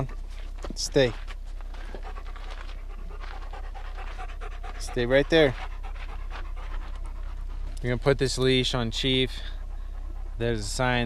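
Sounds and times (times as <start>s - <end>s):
dog panting: 0.2s - 11.0s.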